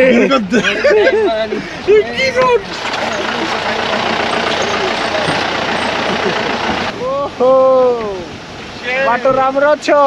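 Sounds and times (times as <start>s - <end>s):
engine running: 2.5s - 6.9s.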